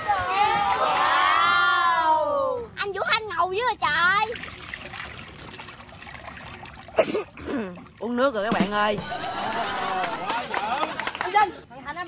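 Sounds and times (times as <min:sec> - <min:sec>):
water pouring and trickling: 0:03.8 - 0:09.0.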